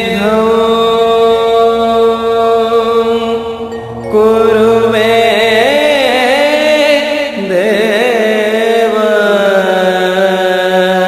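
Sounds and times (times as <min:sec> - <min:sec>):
slow sung chant with music: 0:00.0 - 0:11.0.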